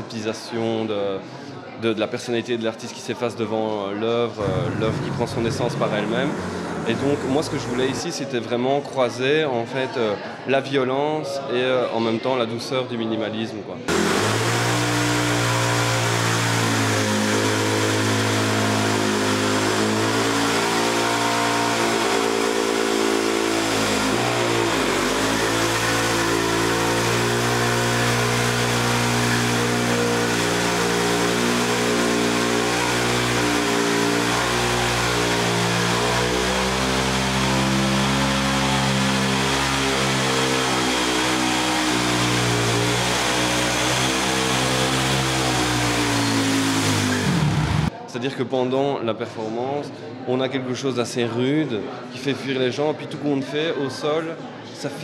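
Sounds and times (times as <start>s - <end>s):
motorcycle engine at high revs: 4.4s - 8.1s, 13.9s - 47.9s.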